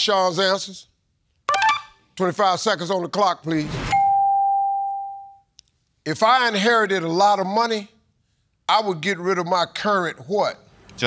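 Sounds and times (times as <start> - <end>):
electronic bell chime: 3.9 - 5.4.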